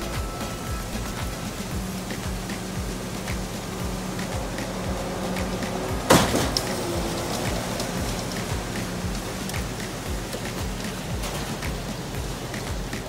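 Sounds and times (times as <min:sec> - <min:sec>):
diesel engine running: 0:00.0 - 0:13.0
low pump thumps: 0:00.0 - 0:13.0.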